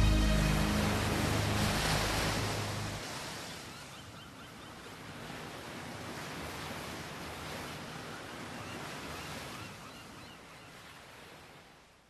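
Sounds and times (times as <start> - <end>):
song music: 0.0 - 3.0
ocean waves: 0.0 - 12.0.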